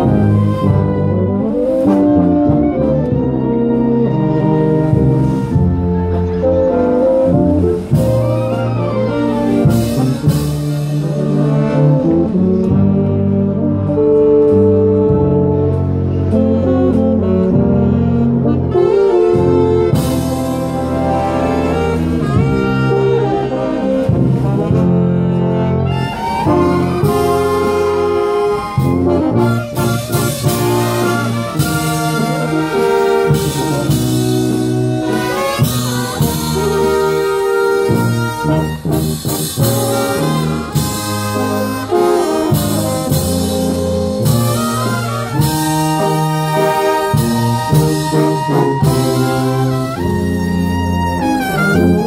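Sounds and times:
brass band playing slow chords: 0:00.0 - 0:52.0
trumpets and trombones: 0:00.0 - 0:52.0.

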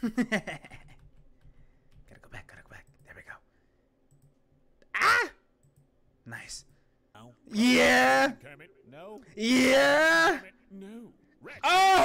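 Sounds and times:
person exclaiming: 0:04.9 - 0:05.4, 0:07.5 - 0:08.4, 0:09.4 - 0:10.4.

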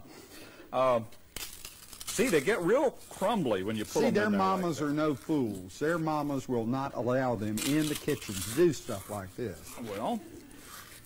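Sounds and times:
taco shells crunching: 0:01.3 - 0:03.3, 0:07.5 - 0:11.0.

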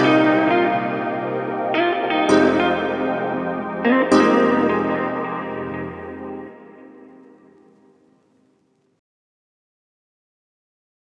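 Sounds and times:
synth-pop band instrumental: 0:00.0 - 0:07.5
electric guitar chords with effects: 0:00.0 - 0:08.4.

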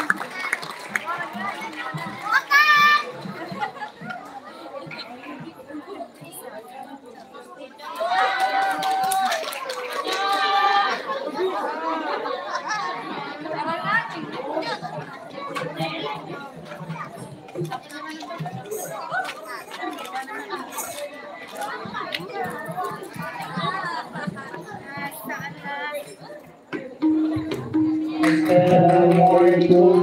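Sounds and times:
audience chatter: 0:00.0 - 0:30.0.

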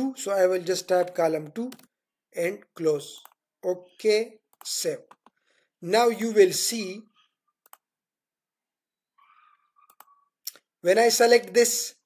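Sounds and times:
computer mouse clicks: 0:01.0 - 0:01.9, 0:04.5 - 0:05.4, 0:07.6 - 0:07.9, 0:09.2 - 0:10.7.

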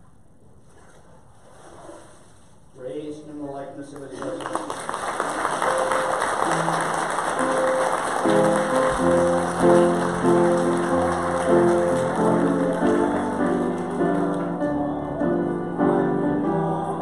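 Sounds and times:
congregation applauding: 0:03.9 - 0:15.7
slow piano chords: 0:05.0 - 0:17.0.

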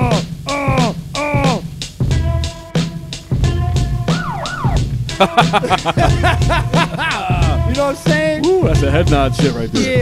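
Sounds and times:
hip-hop beat: 0:00.0 - 0:10.0.

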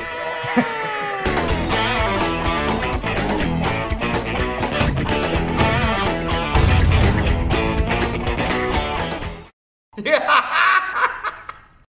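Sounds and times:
giggling laughter: 0:00.4 - 0:01.2, 0:10.0 - 0:11.7.

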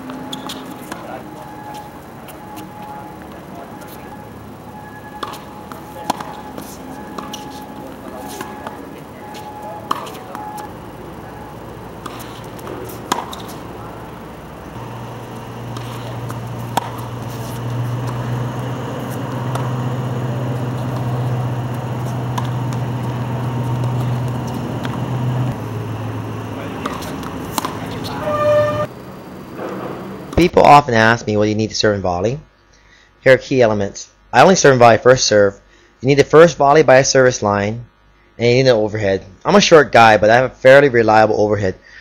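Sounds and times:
tennis balls struck by racquets: 0:00.0 - 0:30.5
low steady hum: 0:00.0 - 0:33.2.

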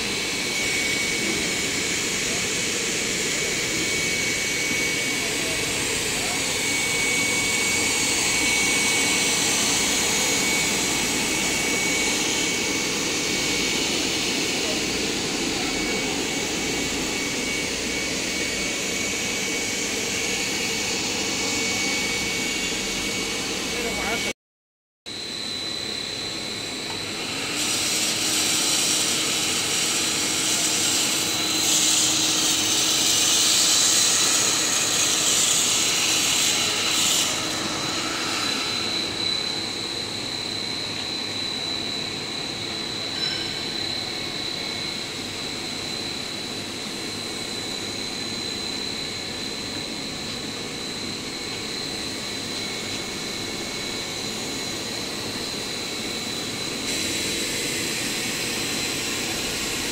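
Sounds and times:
extrusion machine running: 0:00.0 - 0:24.4, 0:25.9 - 0:59.9
high-pitched machine whine: 0:00.0 - 0:24.4, 0:25.1 - 0:59.9.

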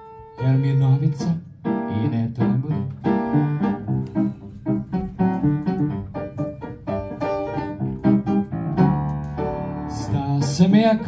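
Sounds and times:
upright piano chords: 0:00.0 - 0:11.0.

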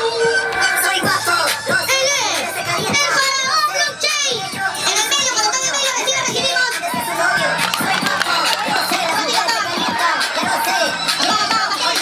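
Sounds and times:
song with high-pitched vocals: 0:00.0 - 0:12.0.

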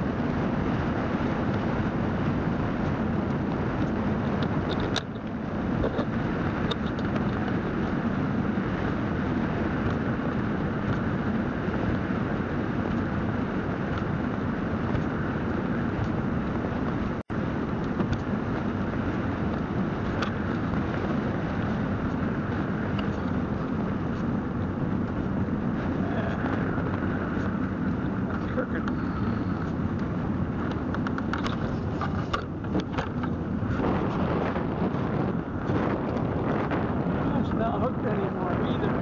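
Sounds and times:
velomobile rolling on asphalt: 0:00.0 - 0:39.0
wind on microphone: 0:00.0 - 0:39.0.

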